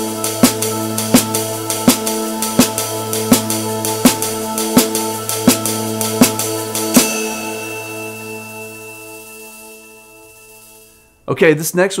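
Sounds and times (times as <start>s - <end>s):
snare drum and cymbal stroke: 0.0s - 9.8s
held low musical note: 0.1s - 10.8s.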